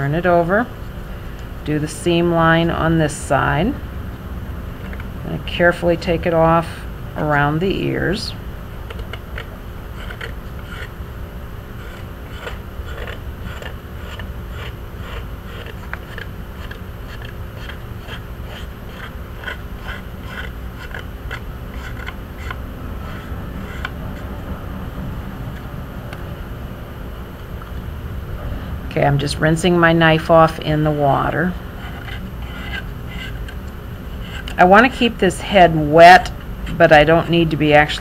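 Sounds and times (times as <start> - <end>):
steady low hum: 0.0 - 38.0
knife scraping porcelain: 8.9 - 11.0, 11.8 - 24.3, 31.3 - 34.7.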